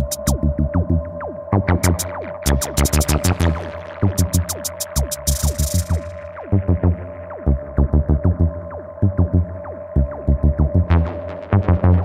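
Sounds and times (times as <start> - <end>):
deep bass pulses: 0.0 - 12.0
electronic music: 0.0 - 12.0.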